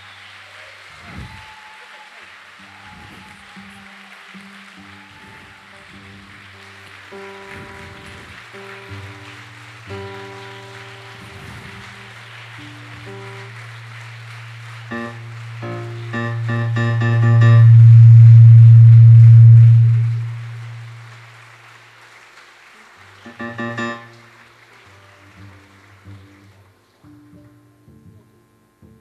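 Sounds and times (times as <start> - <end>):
soft plucked notes: 9.8 - 21.2, 23.3 - 24.4, 27.0 - 29.0
low held tone: 14.4 - 21.2, 23.3 - 24.2.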